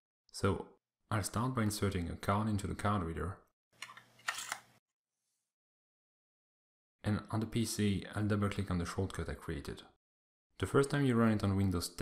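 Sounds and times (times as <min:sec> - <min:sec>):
card scraping into reader slot: 0:03.8 - 0:04.7.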